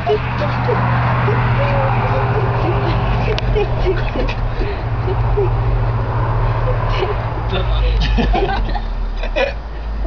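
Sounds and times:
person murmuring: 0.0 - 4.2.

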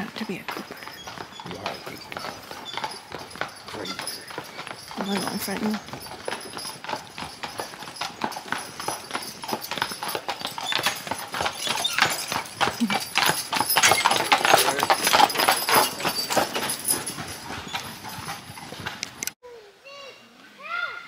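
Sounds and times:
hooves clip-clopping on dirt road: 0.0 - 19.4
horse-drawn wagon passing: 0.0 - 19.4.

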